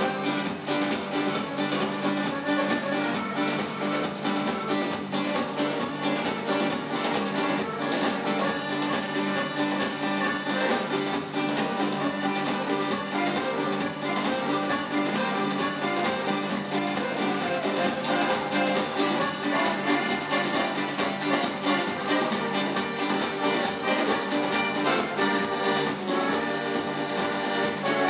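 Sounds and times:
accordion: 0:00.0 - 0:28.0
steady drum rhythm: 0:00.0 - 0:28.0
strummed acoustic guitars: 0:00.0 - 0:28.0.

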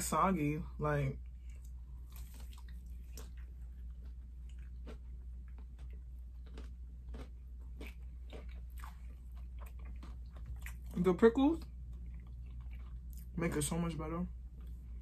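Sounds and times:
steady low hum: 0:00.0 - 0:15.0
chewing crunches: 0:01.2 - 0:13.4, 0:14.5 - 0:15.0.

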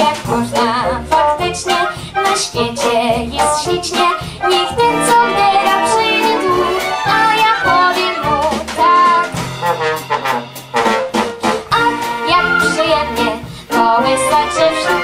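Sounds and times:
girl singing into a microphone: 0:00.0 - 0:09.4, 0:11.8 - 0:15.0
salon orchestra with violins: 0:00.1 - 0:09.9, 0:11.2 - 0:15.0.

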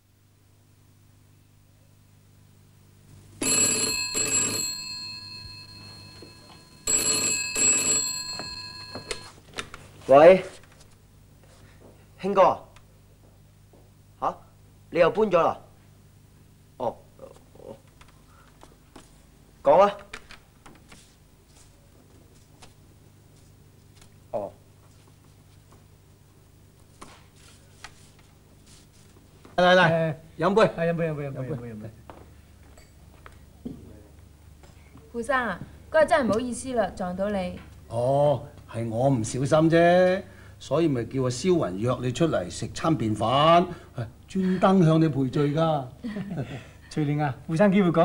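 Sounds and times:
steady low hum: 0:00.0 - 0:48.0
telephone bell ringing: 0:03.4 - 0:09.4.

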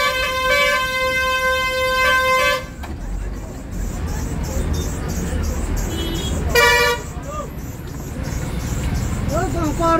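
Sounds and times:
vehicle horn toot: 0:00.0 - 0:02.8, 0:05.9 - 0:07.1
street traffic: 0:00.0 - 0:09.9
vehicle engine rumble: 0:00.0 - 0:09.9.

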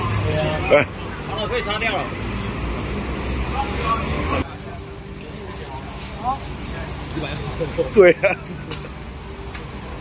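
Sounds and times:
street and traffic rumble: 0:00.0 - 0:10.0.

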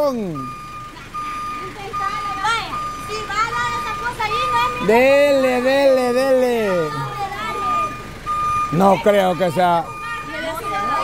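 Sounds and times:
reverse warning beeper: 0:00.0 - 0:11.0.

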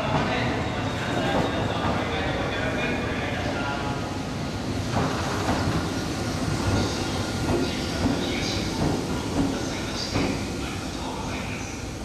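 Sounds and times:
train rumble: 0:00.0 - 0:12.0.

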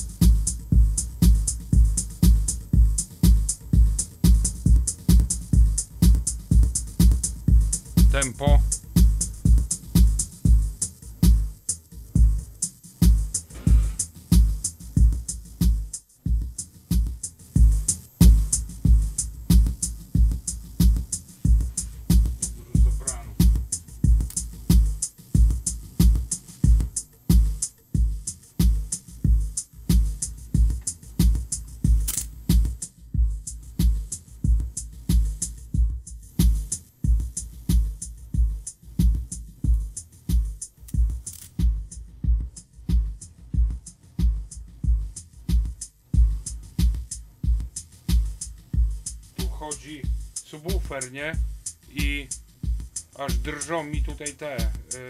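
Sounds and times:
bass kick drum: 0:00.0 - 0:55.0
hi-hat ticks: 0:00.0 - 0:55.0.

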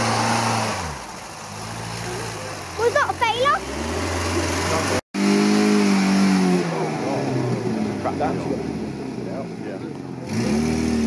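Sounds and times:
sports car engine pulling hard: 0:00.0 - 0:11.0.

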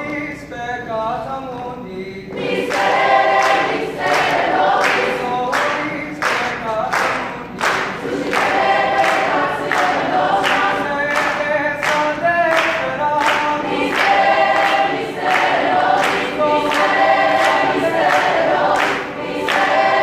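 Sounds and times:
mixed chorus singing: 0:02.3 - 0:20.0.

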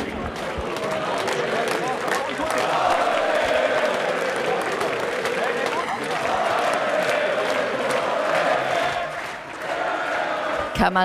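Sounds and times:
crowd chanting: 0:00.0 - 0:11.0.

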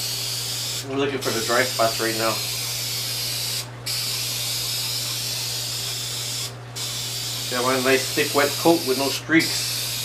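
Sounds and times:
spray paint can hissing: 0:00.0 - 0:10.0.

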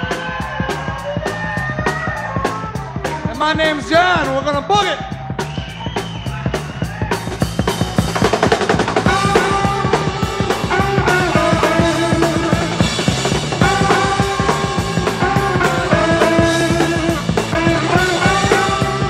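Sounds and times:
live blues band playing: 0:00.0 - 0:19.0.

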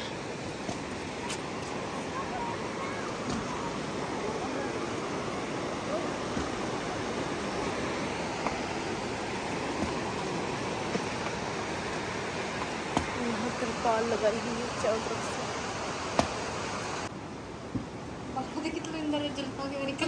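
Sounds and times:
river rushing over rocks: 0:00.0 - 0:18.4
faint voices: 0:01.0 - 0:07.2.

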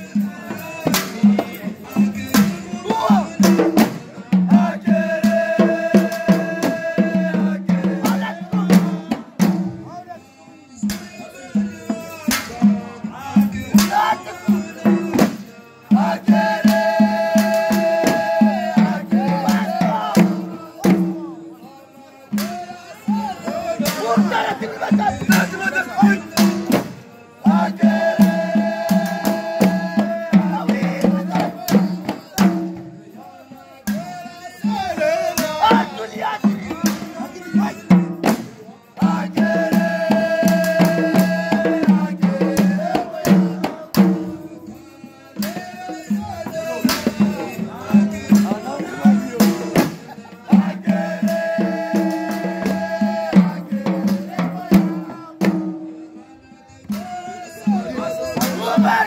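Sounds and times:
frame drum beats: 0:00.0 - 0:10.0, 0:10.8 - 0:21.7, 0:22.3 - 0:33.2, 0:33.9 - 0:44.8, 0:45.4 - 0:56.2, 0:56.8 - 0:59.0
men chanting a hymn: 0:00.0 - 0:59.0.

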